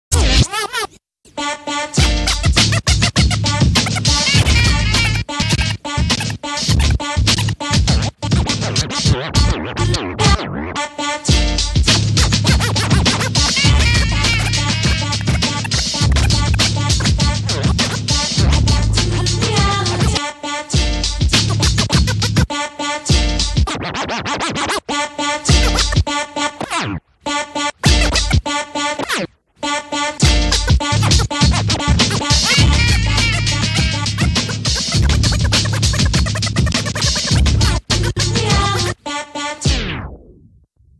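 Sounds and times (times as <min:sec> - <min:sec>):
dj scratching: 0:00.1 - 0:10.9, 0:11.5 - 0:20.2, 0:21.0 - 0:40.1
hip hop beat: 0:01.3 - 0:39.8.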